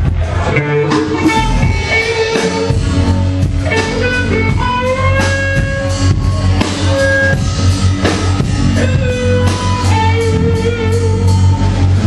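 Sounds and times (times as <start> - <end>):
electric guitar through amplifier: 0.0 - 12.0.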